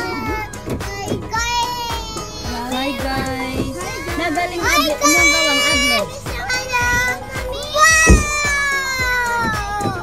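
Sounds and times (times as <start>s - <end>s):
child and adults talking: 1.3s - 8.5s.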